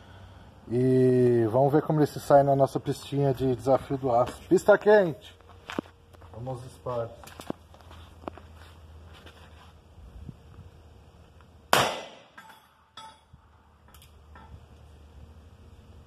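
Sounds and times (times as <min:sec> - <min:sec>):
revolver gunshot: 0:11.7 - 0:12.4.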